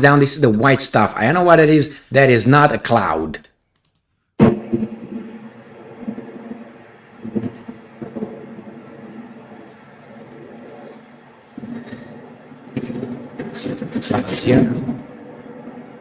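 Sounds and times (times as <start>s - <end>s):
steady rumble: 4.4s - 16.0s.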